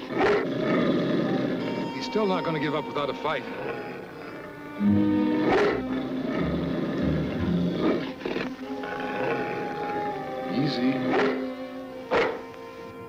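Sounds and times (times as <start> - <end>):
dog snarling: 0.0 - 4.7, 5.3 - 12.5
orchestral music: 1.0 - 13.0.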